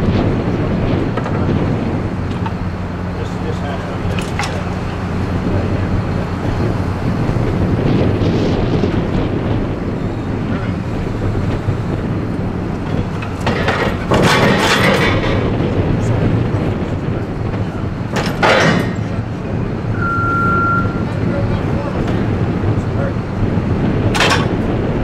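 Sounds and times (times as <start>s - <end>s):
forklift engine idling: 0.0s - 25.0s
noisy rushing burst: 0.0s - 25.0s.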